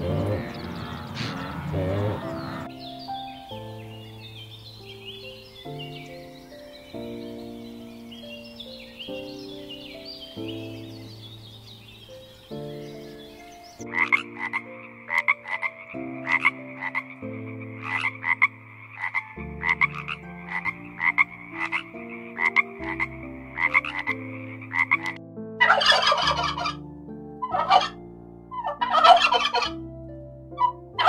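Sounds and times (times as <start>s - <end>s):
frog croaking: 0.0s - 26.8s, 27.4s - 29.8s
soft piano music: 0.0s - 31.0s
turkey gobbling: 24.9s - 26.8s, 27.5s - 28.0s, 28.6s - 29.8s.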